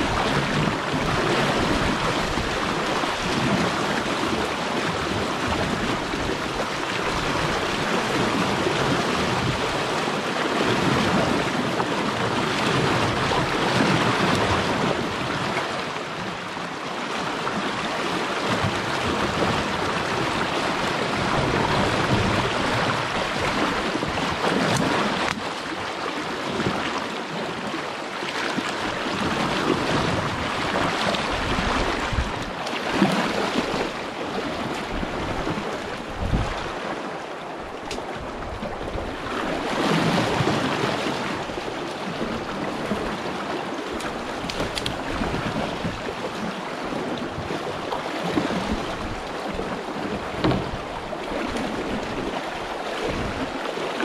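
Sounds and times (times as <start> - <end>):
rushing river rapids: 0.0 - 54.0
water churning around wader: 0.0 - 54.0.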